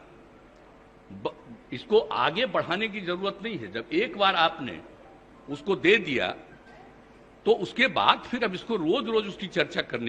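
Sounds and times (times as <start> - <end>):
faint room hum: 0.0 - 10.0
man speaking: 1.1 - 4.9, 5.5 - 6.5, 7.5 - 10.0.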